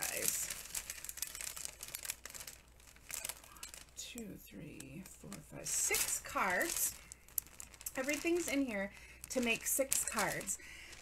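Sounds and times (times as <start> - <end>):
paper and card rustling: 0.0 - 4.0, 4.8 - 11.0.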